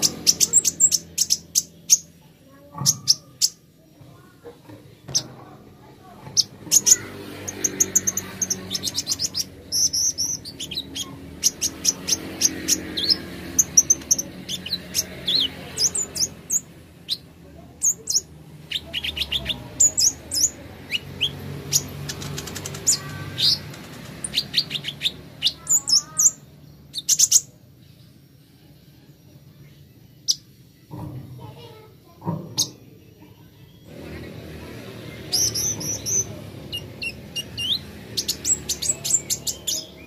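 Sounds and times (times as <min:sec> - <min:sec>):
bird high chirps and twittering: 0:00.0 - 0:28.5, 0:29.1 - 0:40.0.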